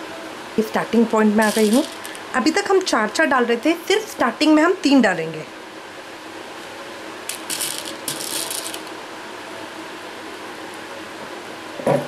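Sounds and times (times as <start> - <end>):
steady low hum: 0.0 - 11.8
plastic beads rattling and clicking: 1.4 - 2.3, 7.3 - 9.0.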